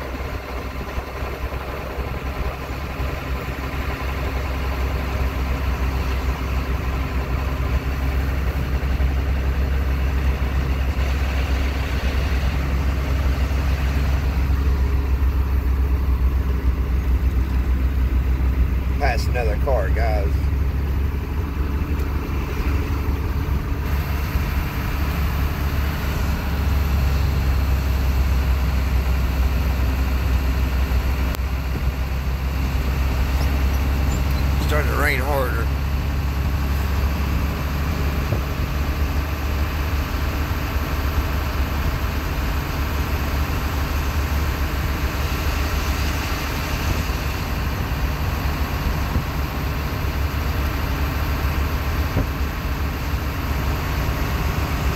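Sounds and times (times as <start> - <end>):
road noise: 0.0 - 54.9
truck engine running: 0.0 - 54.9.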